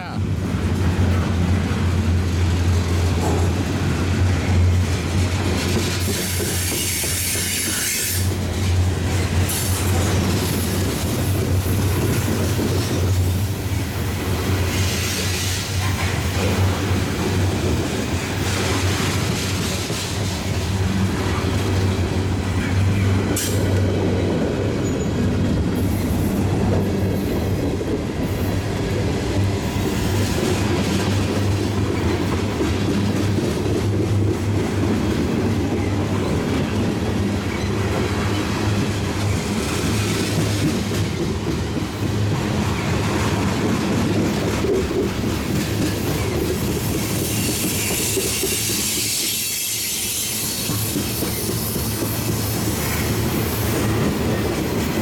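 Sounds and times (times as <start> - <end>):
freight cars rolling on rails: 0.3 - 55.0.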